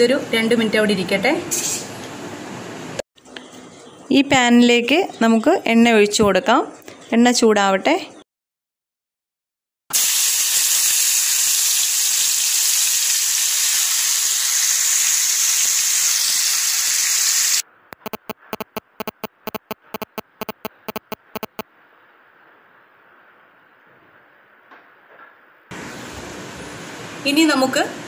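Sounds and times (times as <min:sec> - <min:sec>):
chicken deep-frying in oil: 0:09.9 - 0:17.6.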